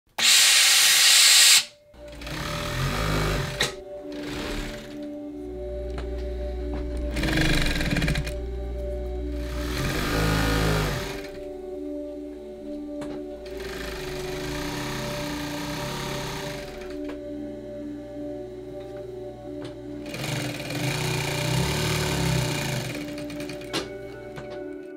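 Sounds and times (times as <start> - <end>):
steam iron hissing: 0.1 - 5.0, 9.4 - 11.4, 20.0 - 24.2
background music: 0.2 - 24.9
sewing machine stitching: 2.0 - 5.0, 7.1 - 8.4, 9.4 - 11.4, 13.4 - 17.1, 20.0 - 24.2.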